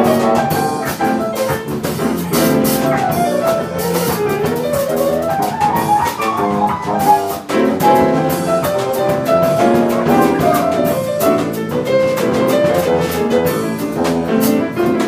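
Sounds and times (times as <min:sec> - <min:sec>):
grand piano: 0:00.0 - 0:15.0
jazz band playing: 0:00.0 - 0:15.0.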